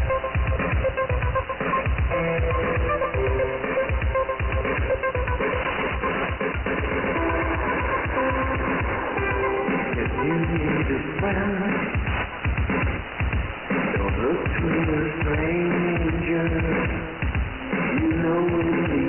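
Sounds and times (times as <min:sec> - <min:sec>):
music with steady beat on radio: 0:00.0 - 0:19.0.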